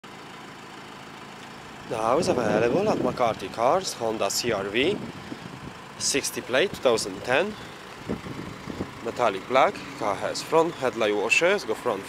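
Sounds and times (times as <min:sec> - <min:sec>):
low vehicle hum: 0:00.1 - 0:12.0
man speaking: 0:01.9 - 0:05.1, 0:06.0 - 0:07.7, 0:09.0 - 0:12.0.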